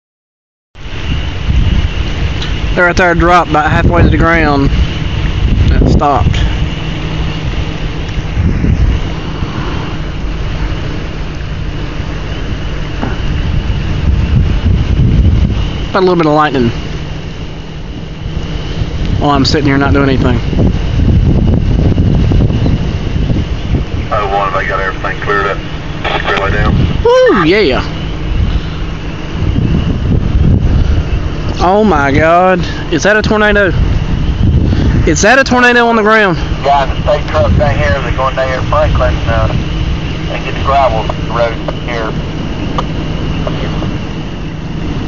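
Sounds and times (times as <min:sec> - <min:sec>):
wind buffeting microphone: 0:00.8 - 0:45.0.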